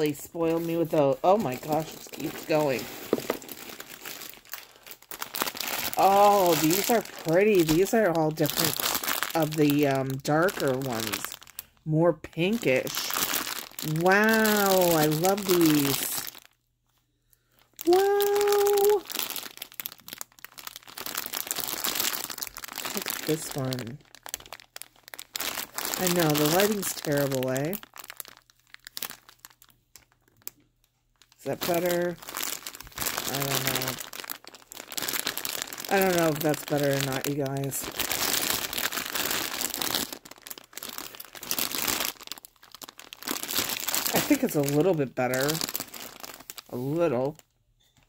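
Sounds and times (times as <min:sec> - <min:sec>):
plastic bag crinkling: 0:00.0 - 0:16.6, 0:17.3 - 0:48.0.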